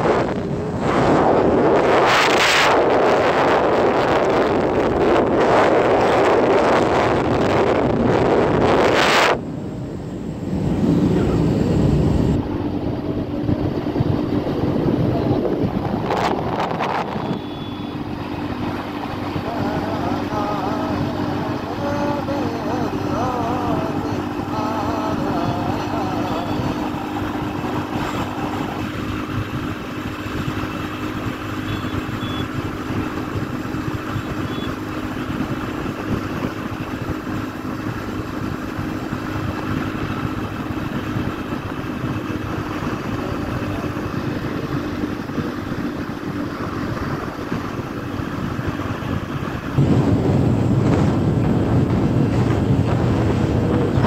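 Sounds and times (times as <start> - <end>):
motorcycle engine running: 0.0 - 54.0
road noise: 0.0 - 54.0
wind on microphone: 0.0 - 54.0.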